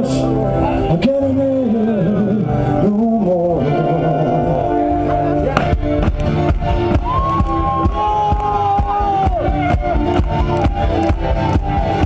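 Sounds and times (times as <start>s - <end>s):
person singing: 0.0s - 5.5s
drums playing steady beat: 5.6s - 12.0s
flute melody: 6.7s - 12.0s.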